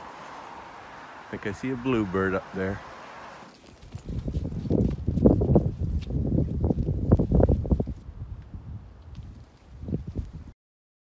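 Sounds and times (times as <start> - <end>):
footsteps crunching on snow: 3.2 - 8.0, 9.0 - 10.5.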